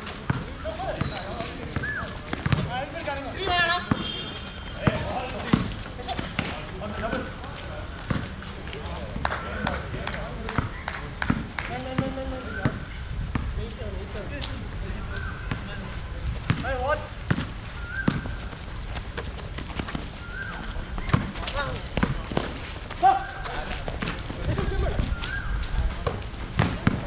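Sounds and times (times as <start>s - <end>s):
basketball bouncing on concrete: 0.1s - 2.8s, 3.8s - 4.2s, 4.8s - 6.6s, 10.5s - 13.5s, 16.3s - 20.1s, 20.9s - 22.6s, 25.8s - 27.0s.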